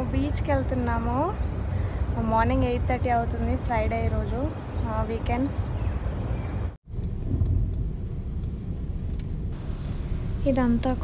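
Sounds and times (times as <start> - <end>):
car interior rumble: 6.9 - 11.0.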